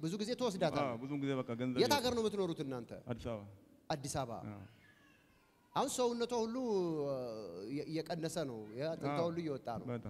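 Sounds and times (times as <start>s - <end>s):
faint high wavering cry: 4.5s - 6.1s
man speaking through pa: 8.6s - 10.0s.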